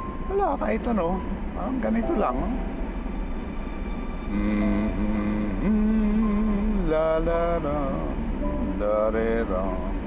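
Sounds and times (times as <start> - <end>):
man singing wordless lullaby: 4.3 - 10.0.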